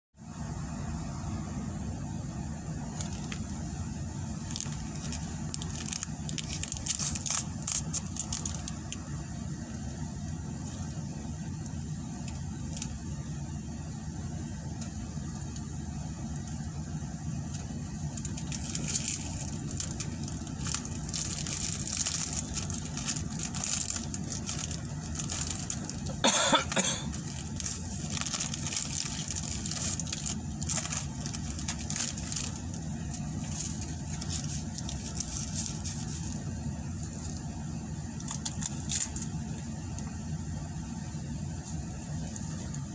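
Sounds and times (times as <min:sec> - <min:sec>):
car engine idling: 0:00.2 - 0:42.9
plastic food pack crackling: 0:02.9 - 0:09.0, 0:09.7 - 0:13.2, 0:17.4 - 0:37.4, 0:38.2 - 0:39.3, 0:41.6 - 0:42.9.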